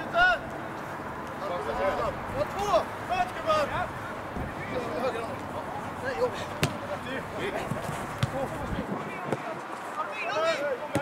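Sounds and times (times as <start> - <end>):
players calling and shouting: 0.0 - 11.0
football kick: 6.6 - 6.9, 7.6 - 9.5.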